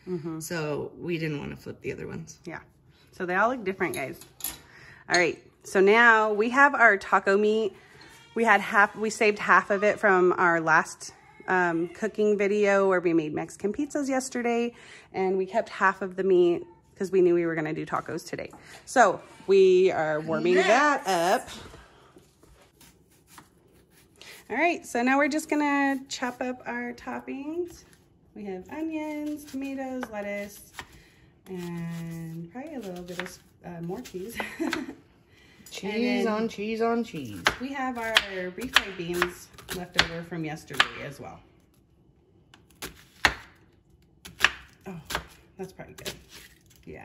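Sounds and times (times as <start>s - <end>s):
knife chopping on wooden board: 32.8s - 33.4s, 37.3s - 40.2s, 42.6s - 43.6s.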